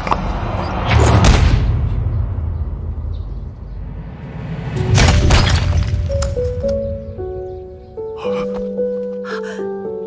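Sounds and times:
low rumble: 0.0s - 6.7s
background music: 4.1s - 10.0s
scattering debris: 4.9s - 6.4s
stone brick crashing and breaking: 5.0s - 6.2s.

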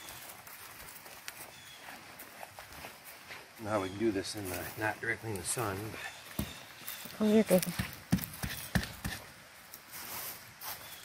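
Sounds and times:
footsteps on dry forest floor: 0.0s - 11.0s.

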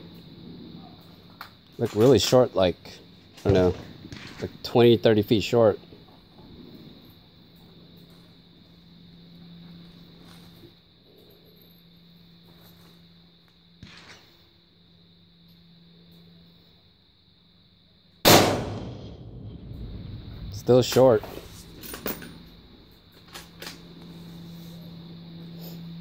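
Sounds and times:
faint steady hum: 0.0s - 26.0s
rifle shot echoing: 18.3s - 20.0s.

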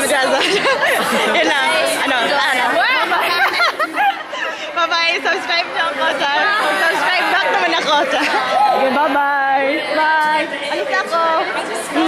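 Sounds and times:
people chattering: 0.0s - 12.0s
woman laughing: 2.8s - 4.7s.

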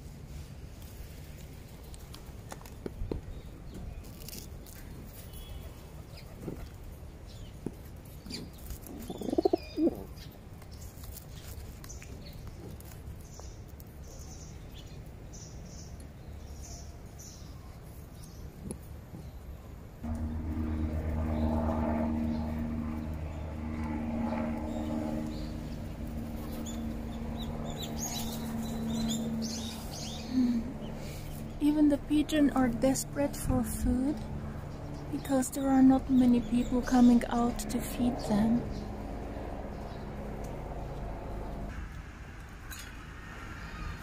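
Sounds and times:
pigeons cooing: 8.3s - 10.1s
steady low hum: 19.4s - 43.4s.

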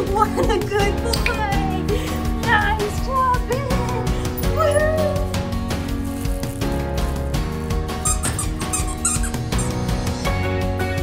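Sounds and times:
background music with steady beat: 0.0s - 11.0s
squeaky dog toy squeaks: 8.0s - 9.8s.

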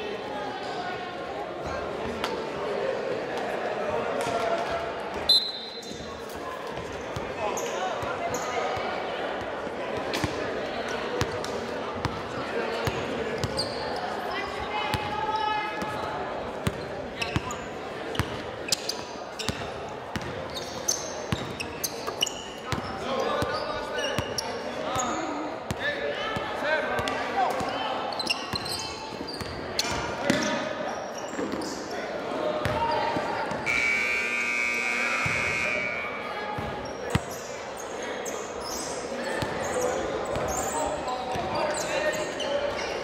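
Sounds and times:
sneakers squeaking: 5.1s - 8.9s, 12.0s - 25.8s, 27.0s - 43.0s
long steady high tone: 33.7s - 36.3s.

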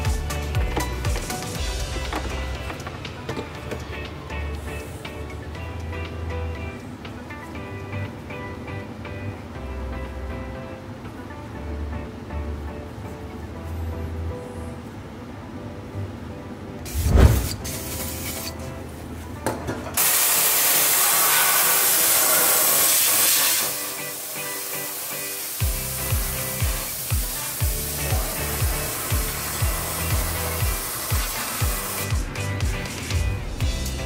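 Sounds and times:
background music with beat: 0.0s - 13.4s, 23.7s - 34.0s
spray hiss: 16.9s - 18.5s, 20.0s - 32.4s.

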